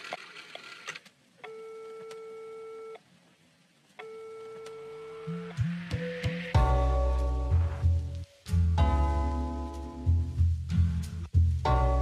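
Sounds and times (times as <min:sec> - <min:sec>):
steady electronic beep tone: 0:04.0 - 0:06.7.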